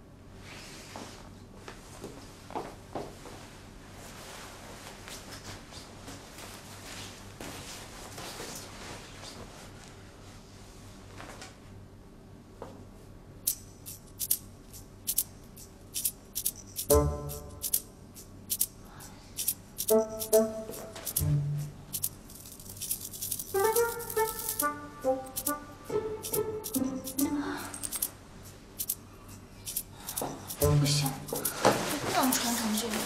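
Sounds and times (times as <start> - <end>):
cloth garment rustling: 1.9 - 11.5, 30.9 - 33.0
packaging rustling and crinkling: 30.0 - 33.0.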